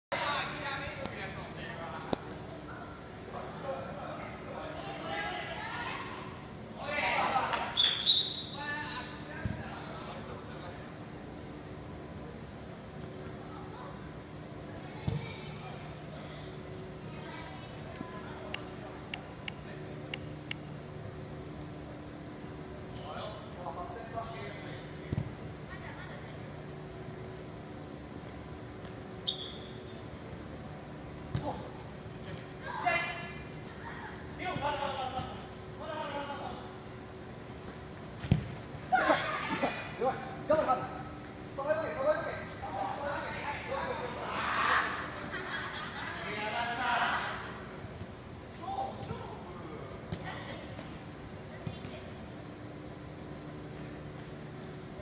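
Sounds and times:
hall background hum: 0:00.1 - 0:55.0
sharp kicks of ball: 0:38.2 - 0:38.6.

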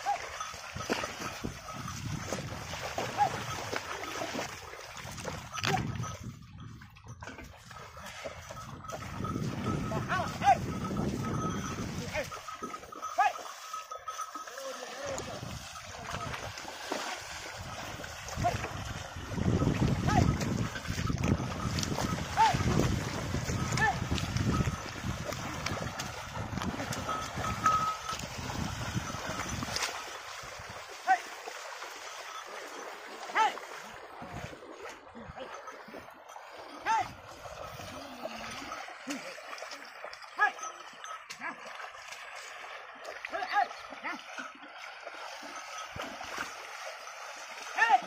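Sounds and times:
cart splashing through mud: 0:00.0 - 0:05.6, 0:15.4 - 0:35.0.

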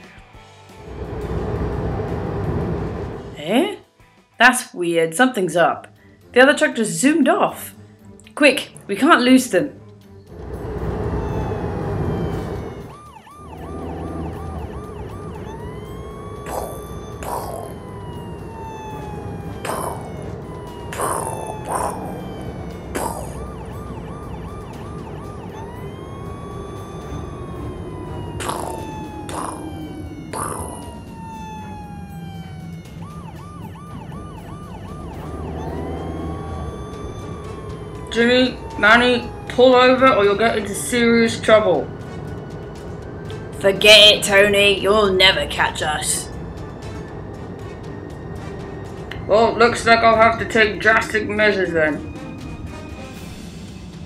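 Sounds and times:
low vehicle rumble: 0:00.4 - 0:03.6, 0:10.0 - 0:54.0
police siren wailing and yelping: 0:10.3 - 0:53.5.

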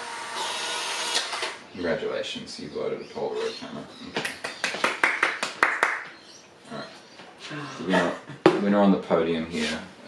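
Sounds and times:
hand claps: 0:04.2 - 0:06.2.

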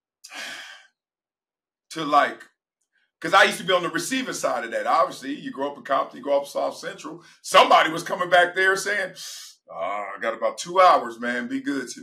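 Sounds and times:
man sighing: 0:00.3 - 0:00.8.

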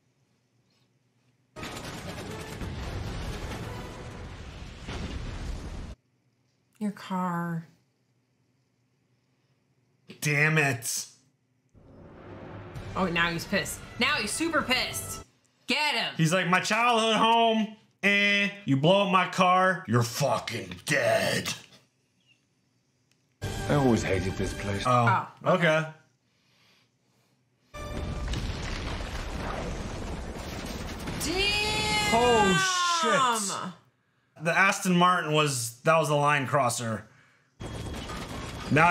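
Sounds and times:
explosion and fire rumbling: 0:01.6 - 0:06.0, 0:11.8 - 0:13.8, 0:27.8 - 0:32.4, 0:37.6 - 0:38.9
low rumble: 0:11.8 - 0:14.0
film score music: 0:11.8 - 0:15.3, 0:23.4 - 0:25.2.

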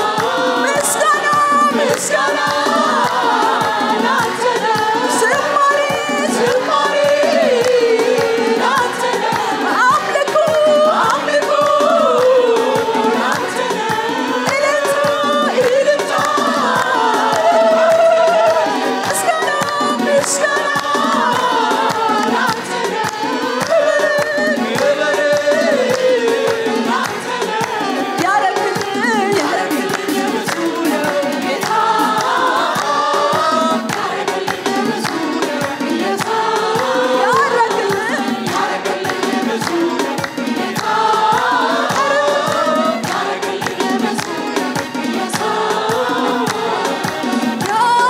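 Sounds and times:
choir singing worship song: 0:00.0 - 0:48.0
hand clapping: 0:00.0 - 0:48.0.

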